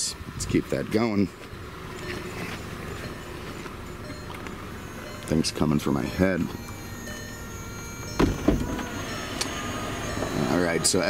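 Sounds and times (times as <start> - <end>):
folding roof mechanism humming: 1.3 - 11.0
roof panels thunking: 8.2 - 8.9.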